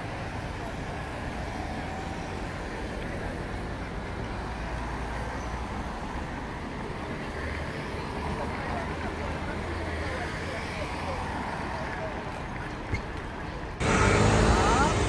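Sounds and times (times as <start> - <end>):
cars driving past: 13.7 - 15.0.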